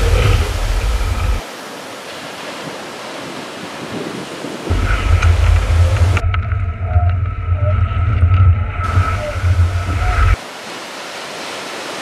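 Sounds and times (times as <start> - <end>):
wind buffeting microphone: 0.0 - 1.4, 3.2 - 10.4
sea water rushing past board: 0.0 - 12.0.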